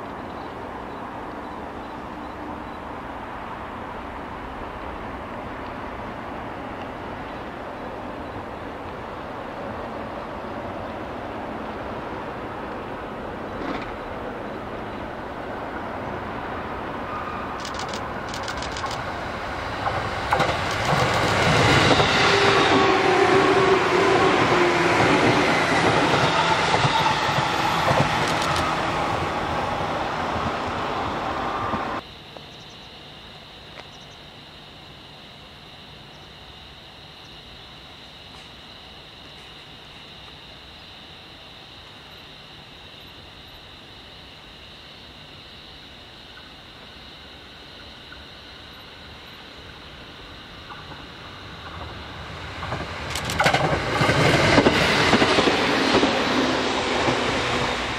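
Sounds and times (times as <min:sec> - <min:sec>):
train passing at speed: 0:00.0 - 0:32.0, 0:46.3 - 0:57.9.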